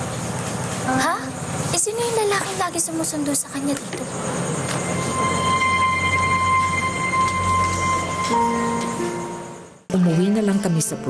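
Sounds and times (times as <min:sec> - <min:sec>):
high held tone: 0:04.2 - 0:09.9.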